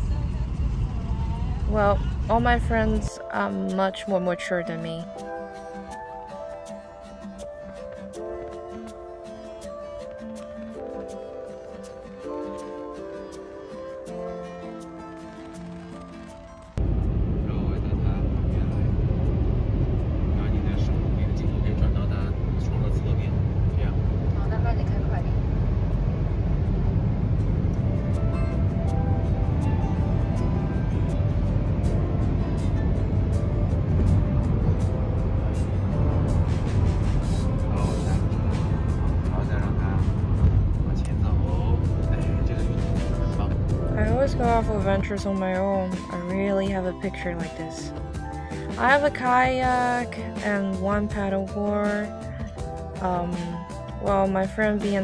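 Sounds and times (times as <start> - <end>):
wind and road noise in car: 0.0 - 3.1, 15.6 - 47.4.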